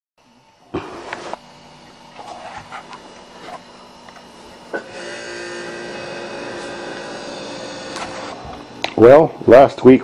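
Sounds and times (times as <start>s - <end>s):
motor humming: 0.2s - 9.7s.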